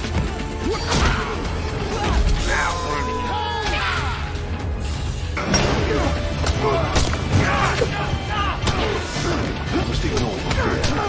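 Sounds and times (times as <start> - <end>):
dramatic music: 0.0 - 11.0.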